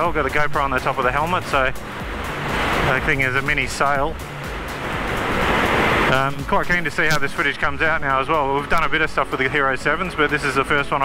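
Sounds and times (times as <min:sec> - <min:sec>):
motorcycle engine hum: 0:00.0 - 0:11.0.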